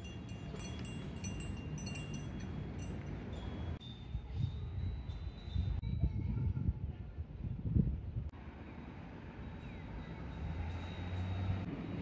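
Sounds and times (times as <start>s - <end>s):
small metal chimes tinkling: 0.0s - 6.3s, 9.4s - 12.0s.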